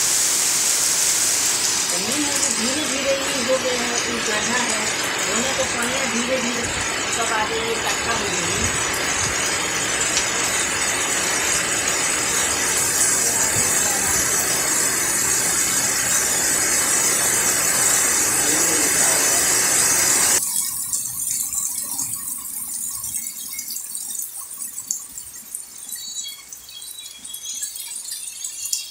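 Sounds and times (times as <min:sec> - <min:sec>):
heavy rain pouring: 0:00.0 - 0:26.0
light rain patter: 0:00.0 - 0:28.9
water drips: 0:00.6 - 0:28.9.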